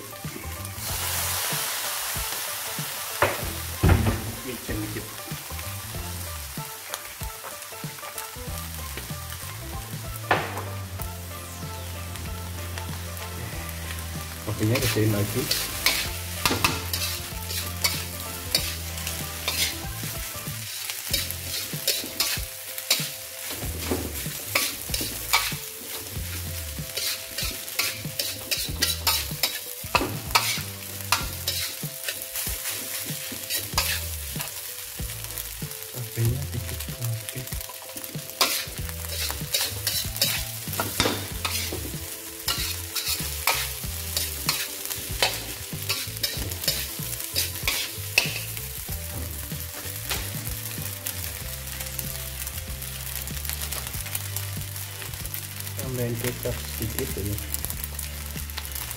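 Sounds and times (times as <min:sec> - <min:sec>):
food sizzling: 0:00.0 - 0:58.9
metal spatula scraping a wok: 0:13.2 - 0:34.6, 0:37.7 - 0:50.4.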